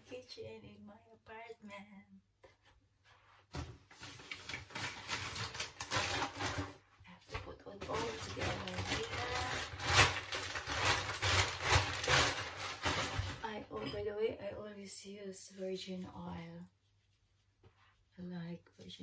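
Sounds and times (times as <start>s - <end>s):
bag crinkling and rustling: 3.9s - 6.8s, 7.8s - 13.4s.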